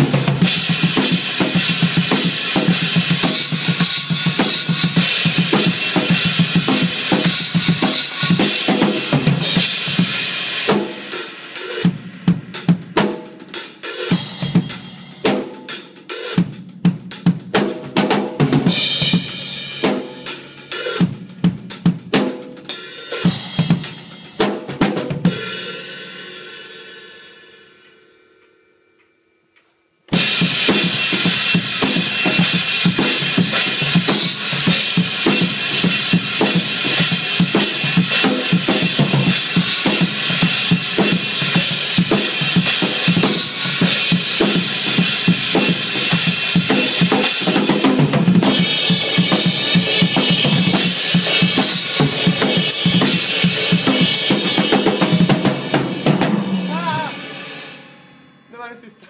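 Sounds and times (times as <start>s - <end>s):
fast metal drumming: 0.0s - 22.2s, 30.1s - 57.7s
drum and cymbal hits: 0.0s - 28.0s, 30.1s - 58.7s.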